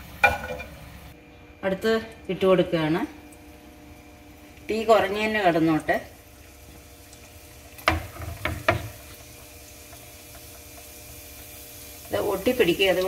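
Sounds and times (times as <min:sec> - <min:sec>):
faint frying: 0:00.0 - 0:13.0.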